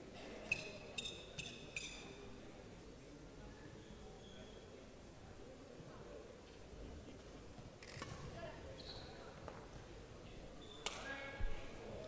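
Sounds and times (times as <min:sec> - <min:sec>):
shoe squeaking on court floor: 0:08.8 - 0:09.3, 0:10.6 - 0:10.9.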